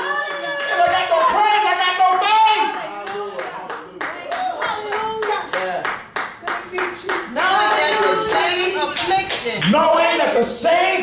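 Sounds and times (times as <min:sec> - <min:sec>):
congregation clapping hands: 0:00.0 - 0:10.0.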